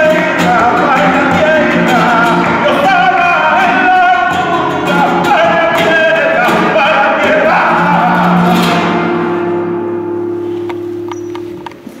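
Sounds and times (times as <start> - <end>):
guitar chord ringing: 8.6 - 11.9.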